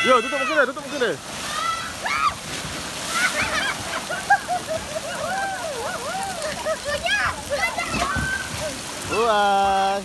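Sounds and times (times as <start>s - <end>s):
children calling and squealing: 0.0s - 4.1s, 5.0s - 9.3s
water splashing and running: 0.0s - 10.0s.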